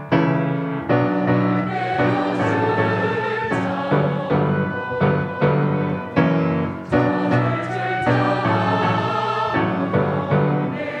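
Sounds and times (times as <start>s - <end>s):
piano accompaniment: 0.0s - 11.0s
choir singing a hymn: 1.0s - 11.0s.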